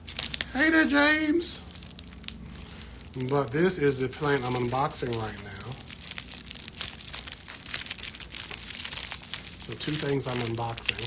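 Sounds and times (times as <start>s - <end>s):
plastic sleeve crinkling: 0.0s - 11.0s.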